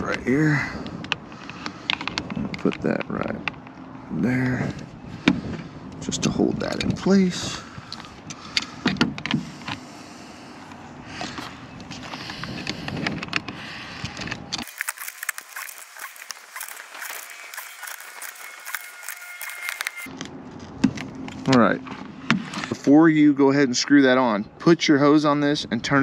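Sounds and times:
handling rustle: 11.2 - 22.8.

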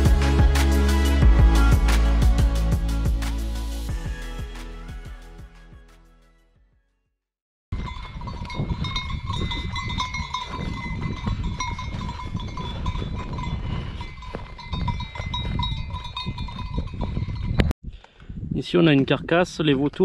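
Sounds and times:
livestock bells jingling: 7.7 - 17.7.

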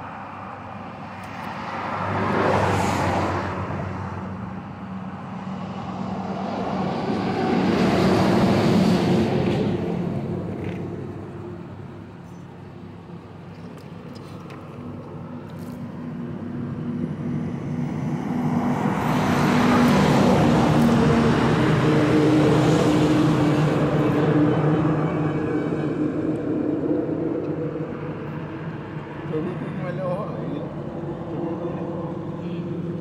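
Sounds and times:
traffic noise: 0.0 - 33.0.

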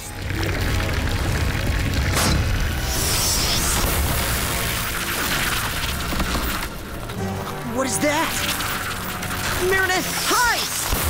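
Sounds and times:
deep continuous rumble: 0.0 - 9.7
dramatic music: 0.0 - 11.0.

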